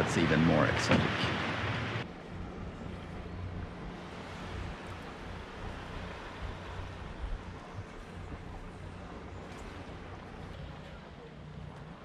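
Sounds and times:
breeze and water hiss: 0.0 - 12.0
wind buffeting microphone: 0.0 - 12.0.

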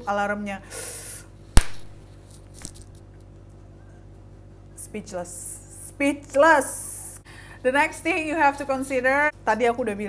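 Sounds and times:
sharp loud smack: 1.6 - 2.0.

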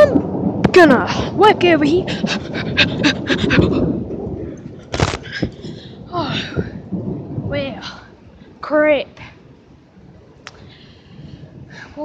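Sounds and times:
person panting: 2.0 - 4.0.

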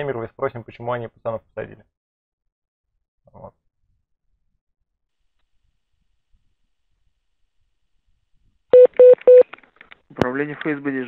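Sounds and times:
short telephone beeps: 8.8 - 9.5.

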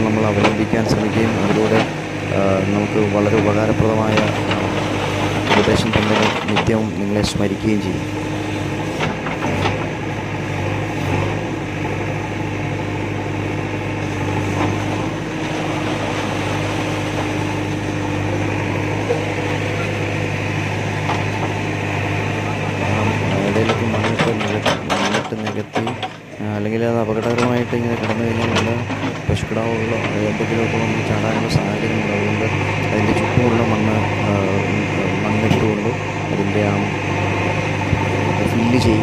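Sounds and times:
person speaking: 0.0 - 4.7, 5.4 - 8.0, 22.3 - 37.0, 38.3 - 39.0
diesel engine running: 0.0 - 39.0.

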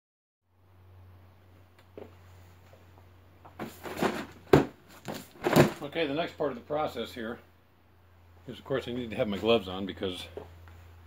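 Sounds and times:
cardboard scuffing: 3.5 - 5.8
cardboard box knocking on wood: 3.6 - 5.8.

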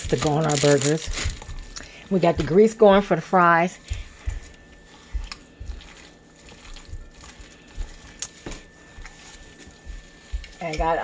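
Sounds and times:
hand squishing wet meat: 3.8 - 10.8.

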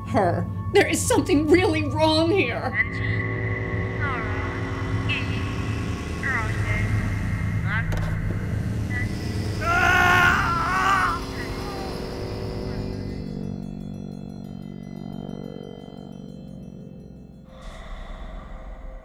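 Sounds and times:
low drone: 0.0 - 19.0
eerie sweeping tones: 0.5 - 19.0
wailing voice-like cry: 9.6 - 12.0.

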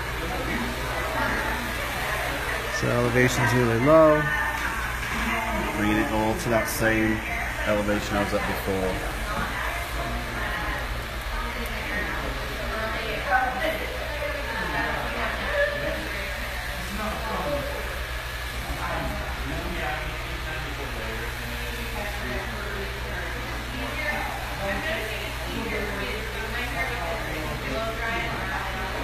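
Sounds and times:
indistinct talking: 0.0 - 29.0.

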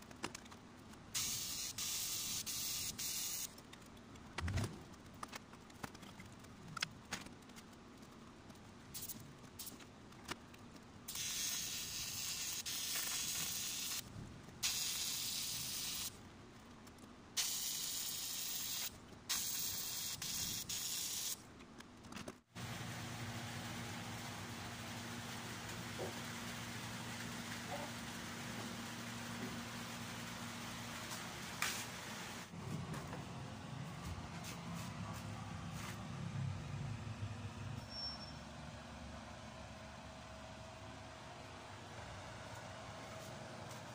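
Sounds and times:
welding arc hissing: 1.2 - 3.6, 11.1 - 16.2, 17.4 - 21.4.

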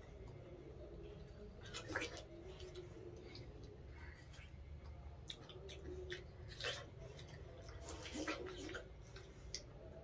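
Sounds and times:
watermelon being bitten and chewed: 4.2 - 9.7.

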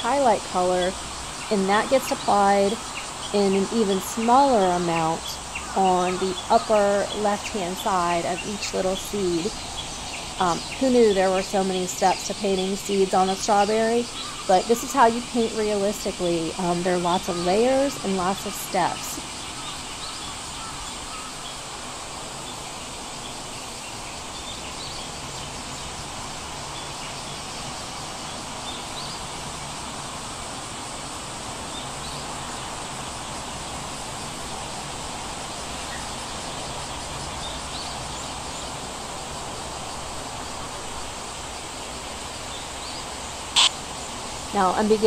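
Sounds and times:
steady background hiss: 0.0 - 45.0
faint high chirps: 43.6 - 43.8.

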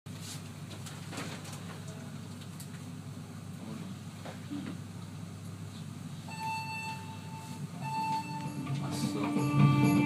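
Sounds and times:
elevator music: 6.3 - 10.0
held electronic tones: 6.3 - 10.0.

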